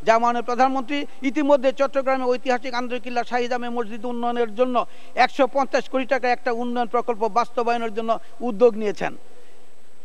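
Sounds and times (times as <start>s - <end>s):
man speaking into a microphone: 0.0s - 9.2s
faint steady hum: 0.0s - 10.0s.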